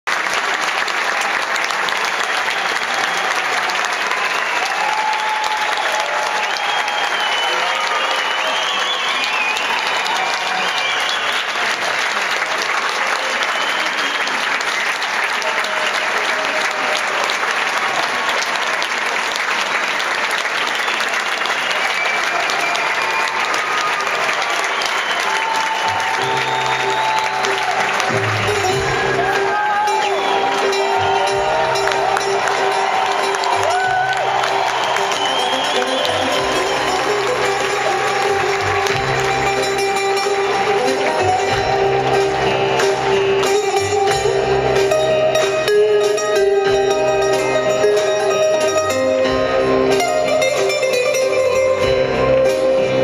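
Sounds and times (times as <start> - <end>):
audience applauding: 0.0 - 53.0.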